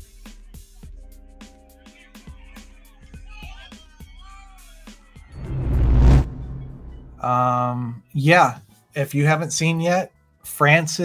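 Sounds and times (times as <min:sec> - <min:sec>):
intro music: 0:05.4 - 0:07.5
whoosh with low boom: 0:05.4 - 0:07.5.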